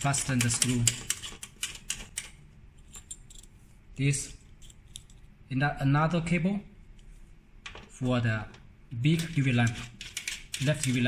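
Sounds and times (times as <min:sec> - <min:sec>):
metal cable connectors clicking: 0:08.5 - 0:11.0.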